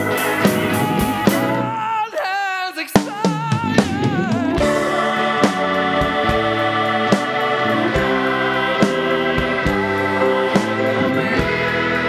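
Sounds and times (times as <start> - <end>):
sustained keyboard chords: 0.0 - 1.8, 3.6 - 12.0.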